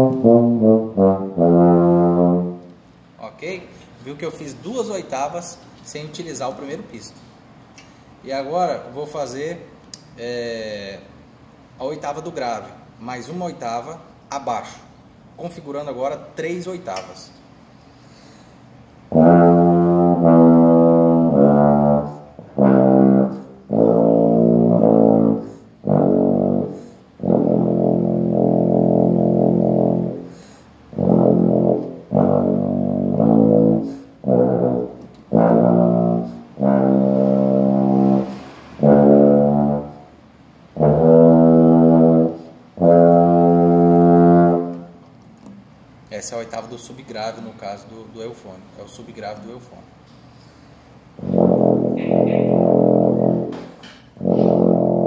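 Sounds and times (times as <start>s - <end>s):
breaths between notes: 17.8s - 18.8s, 30.3s - 30.8s.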